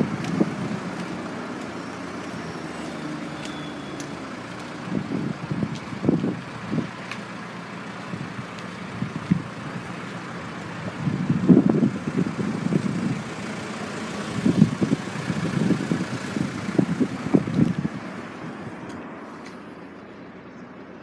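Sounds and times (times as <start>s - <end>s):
wind buffeting microphone: 0.0s - 1.5s, 4.6s - 7.2s, 7.9s - 13.4s, 14.3s - 18.9s.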